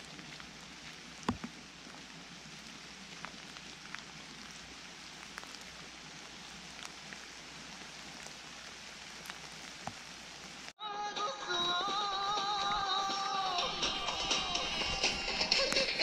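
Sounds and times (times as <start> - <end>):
raindrops ticking close by: 0.0 - 10.8, 11.6 - 16.0
steady rain falling: 0.0 - 10.8, 11.4 - 16.0.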